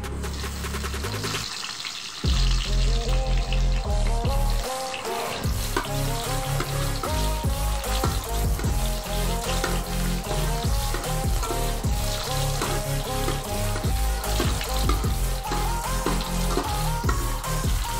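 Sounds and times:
music with heavy beat: 0:00.0 - 0:01.6, 0:02.3 - 0:03.1, 0:03.9 - 0:17.9
garlic sizzling in oil: 0:00.2 - 0:17.9
stirring in pan: 0:04.4 - 0:17.9.

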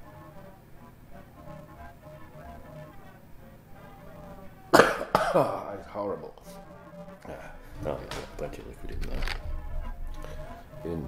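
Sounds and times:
faint background music: 0:00.0 - 0:11.0
man coughing loudly: 0:04.7 - 0:05.8.

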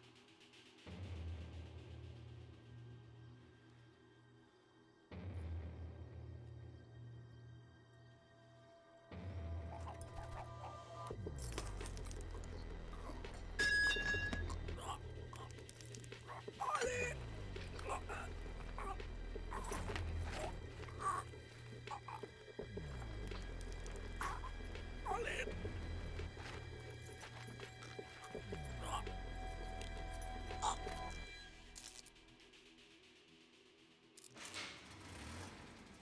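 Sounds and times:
low music drone: 0:00.9 - 0:32.8
car engine starting and running: 0:34.6 - 0:36.0.

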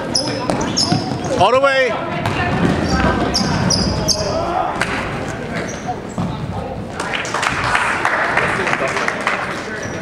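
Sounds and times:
sneakers squeaking on court: 0:00.0 - 0:04.5, 0:05.3 - 0:06.6
voices in a hall: 0:00.0 - 0:10.0
basketball bouncing: 0:02.0 - 0:05.0.

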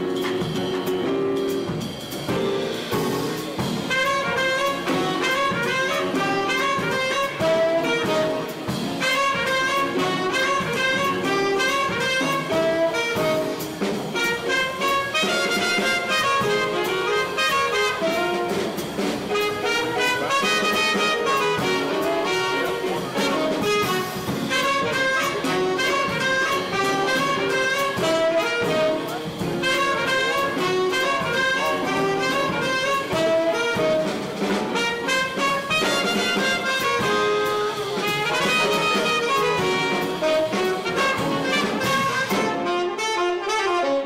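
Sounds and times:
upright bass: 0:00.0 - 0:43.4
drums: 0:00.0 - 0:44.0
piano: 0:00.0 - 0:44.0
saxophone and trumpet playing: 0:00.0 - 0:44.0.

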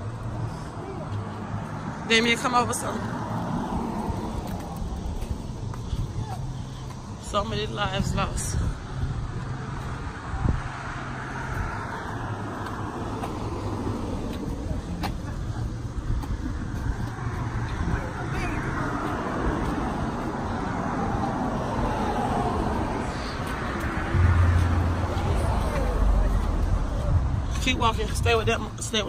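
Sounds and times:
cars passing: 0:00.0 - 0:29.0
low rumble: 0:22.1 - 0:28.8.

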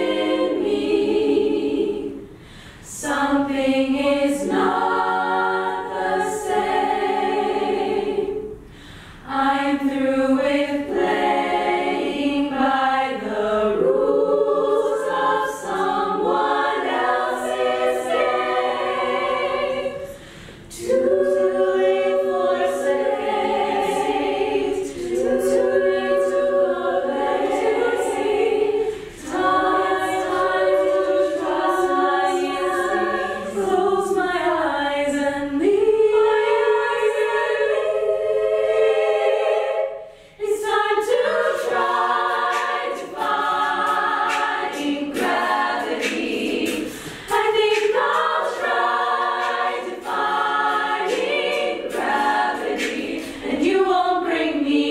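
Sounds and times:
women's choir singing in harmony: 0:00.0 - 0:54.9.

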